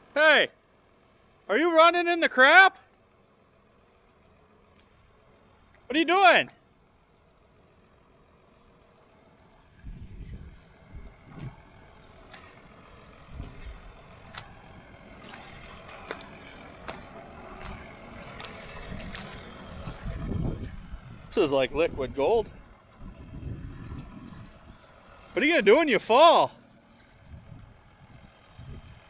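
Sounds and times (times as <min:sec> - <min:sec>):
footsteps squelching through mud: 0:15.2 - 0:20.8.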